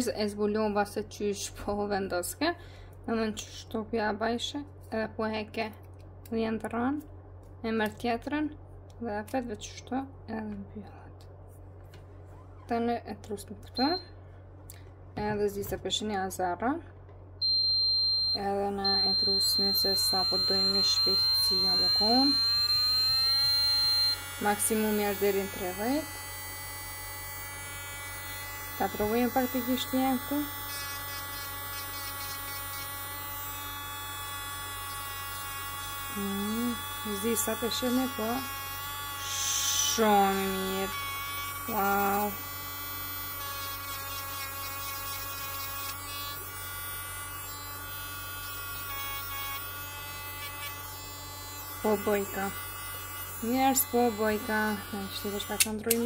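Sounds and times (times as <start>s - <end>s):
electric nail drill whining: 17.4s - 56.0s.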